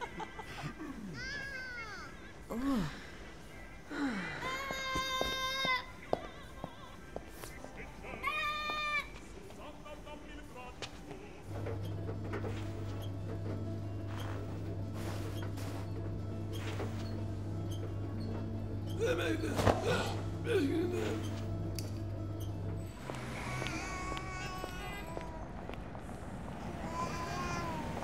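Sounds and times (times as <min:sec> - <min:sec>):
small child crying: 0:01.0 - 0:02.2, 0:04.4 - 0:05.9, 0:08.2 - 0:09.1, 0:23.1 - 0:25.7, 0:26.7 - 0:28.0
steady low hum: 0:11.3 - 0:28.0.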